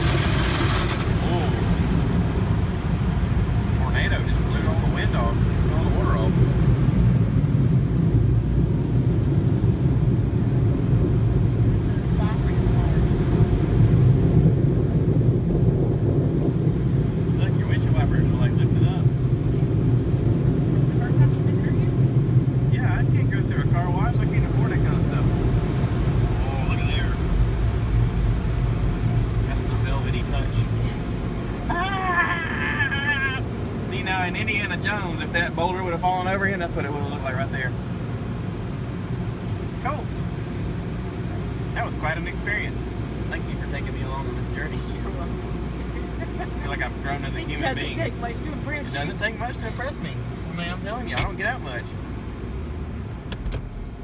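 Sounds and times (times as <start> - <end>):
car wash machinery rumble: 0.0 - 54.0.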